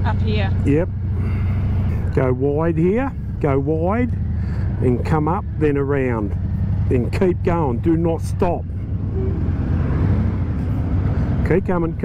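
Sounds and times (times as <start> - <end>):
motorcycle engine rumbling: 0.0 - 12.0
road noise rush: 0.0 - 12.0.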